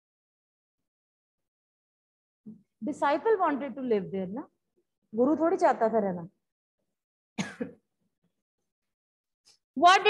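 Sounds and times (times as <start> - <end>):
person clearing throat: 7.4 - 7.8.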